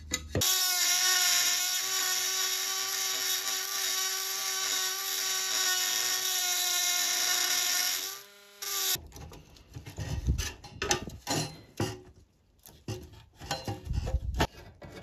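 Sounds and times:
rotary tool grinding metal: 0.4 - 9.0.

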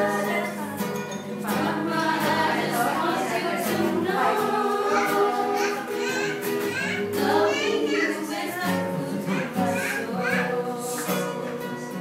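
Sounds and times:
acoustic guitar: 0.0 - 12.0
group singing in unison: 0.0 - 12.0.

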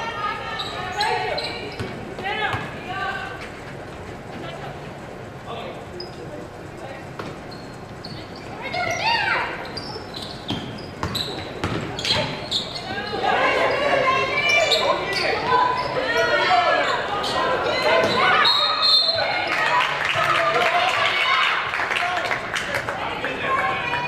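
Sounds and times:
voices echoing in gym: 0.0 - 24.0
basketball bouncing on hardwood: 10.5 - 11.9.

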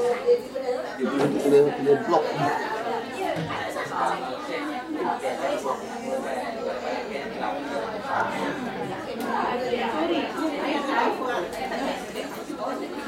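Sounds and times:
people talking at once: 0.0 - 13.0.

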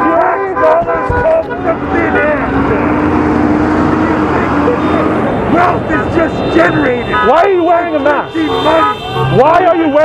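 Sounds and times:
vehicle horn blast: 0.0 - 1.6, 6.2 - 10.0
street traffic noise: 0.0 - 10.0.

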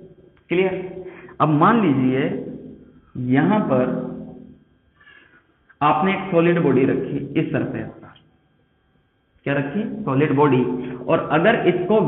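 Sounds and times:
man talking: 0.5 - 2.6, 3.2 - 4.3, 5.8 - 8.2, 9.5 - 12.0.

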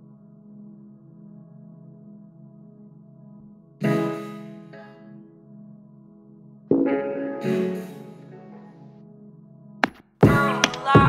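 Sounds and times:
held synth chord: 0.0 - 9.8
loud electronic beat: 9.8 - 11.0.

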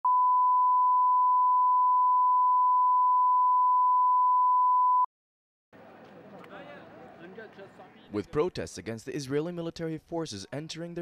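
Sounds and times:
steady test tone beep: 0.1 - 5.1.

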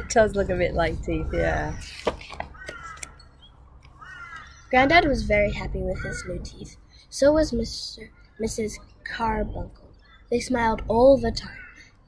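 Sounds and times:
crow cawing: 0.0 - 0.4, 1.5 - 4.8, 5.7 - 7.0, 9.9 - 10.4, 11.4 - 12.0.

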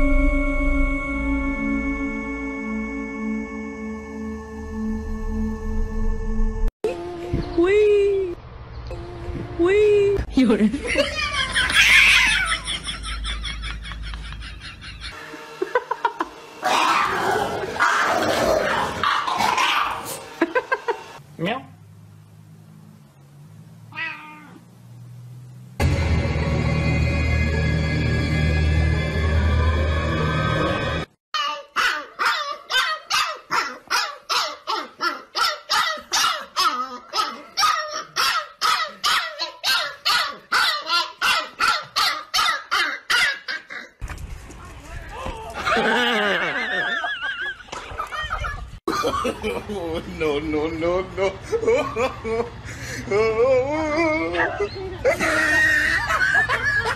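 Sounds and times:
puppy yapping high barks: 31.4 - 43.8.

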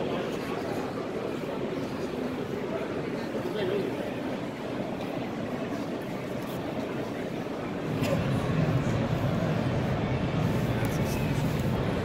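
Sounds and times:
murmur of crowd in hall: 0.0 - 12.0.

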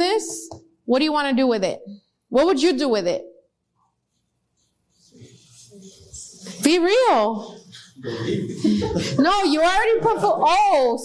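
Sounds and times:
small group murmuring: 5.0 - 10.9.

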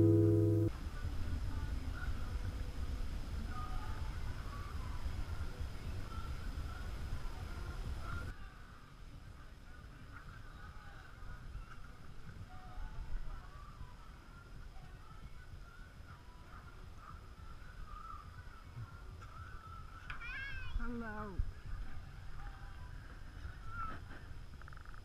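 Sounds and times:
high sweeping yelp: 0.0 - 0.7
low steady rumble: 0.0 - 8.1.

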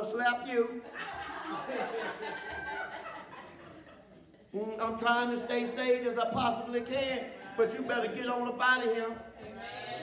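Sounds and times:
people laughing: 0.8 - 4.8, 7.3 - 8.5.

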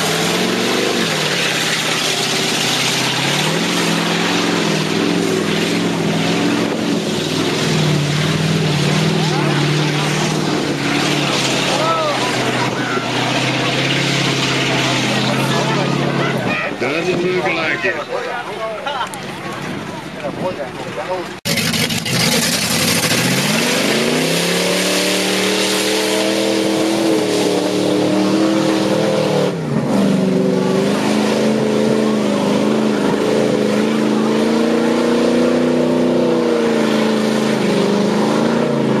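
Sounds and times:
truck engine revving: 0.0 - 39.0.

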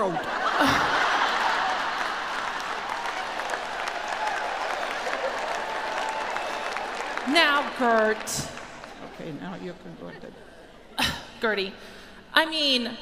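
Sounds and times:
audience applauding: 0.1 - 9.6.

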